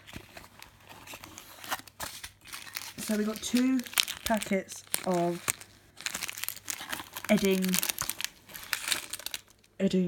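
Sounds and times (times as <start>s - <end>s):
plastic sugar packets crinkling: 0.0s - 9.8s.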